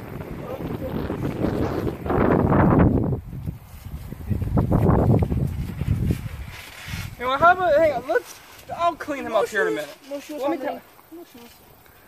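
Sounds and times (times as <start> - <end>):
wind buffeting a microphone: 0.0 - 9.1.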